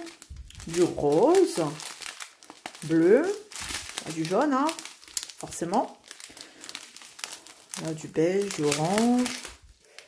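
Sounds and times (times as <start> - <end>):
plastic pouch crinkling: 0.0 - 10.0.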